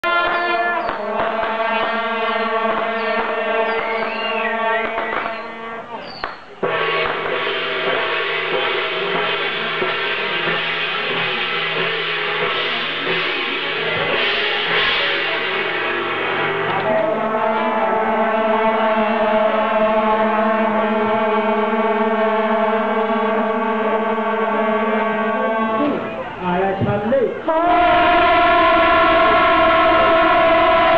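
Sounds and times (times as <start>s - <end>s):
brass horns blowing droning chord: 0.0s - 6.0s, 6.6s - 26.4s, 27.4s - 30.9s.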